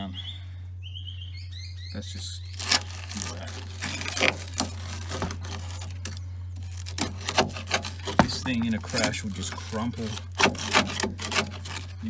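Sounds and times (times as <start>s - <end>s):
screwdriver scraping rusty metal: 2.6s - 12.0s.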